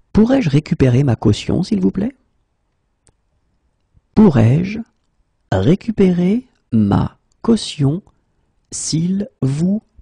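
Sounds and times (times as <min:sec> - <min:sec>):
person speaking: 0:00.1 - 0:02.3, 0:04.1 - 0:10.0.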